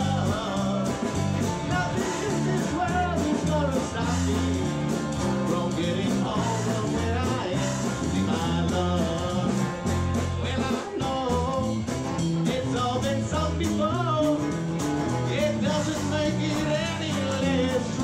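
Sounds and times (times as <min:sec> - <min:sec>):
acoustic guitar: 0:00.0 - 0:18.0
drums beating: 0:00.0 - 0:18.0
electric bass: 0:00.0 - 0:18.0.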